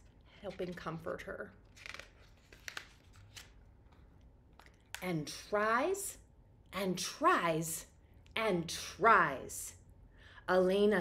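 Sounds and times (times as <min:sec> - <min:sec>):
paper pages turning: 0:00.4 - 0:04.8.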